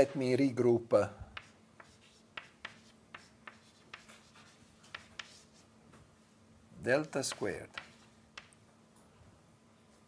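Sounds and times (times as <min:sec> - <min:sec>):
chalk writing on blackboard: 0:01.4 - 0:05.7, 0:07.2 - 0:08.5.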